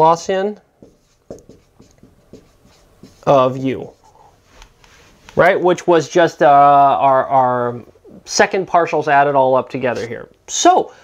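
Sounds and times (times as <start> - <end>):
marker writing on whiteboard: 0.8 - 4.2.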